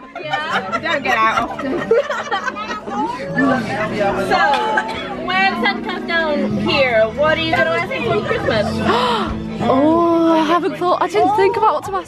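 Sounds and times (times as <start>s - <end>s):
background music: 0.0s - 12.0s
people chatting: 0.0s - 12.0s.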